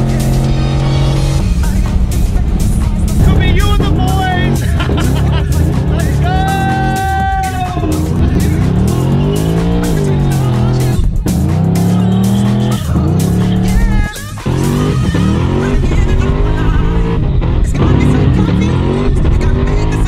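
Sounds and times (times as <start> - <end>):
car engine revving at full throttle: 0.0 - 20.0.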